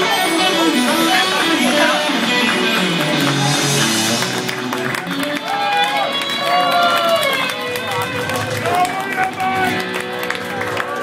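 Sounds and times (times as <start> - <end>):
electric guitar bending notes: 0.0 - 8.7
live rock band playing: 0.0 - 10.8.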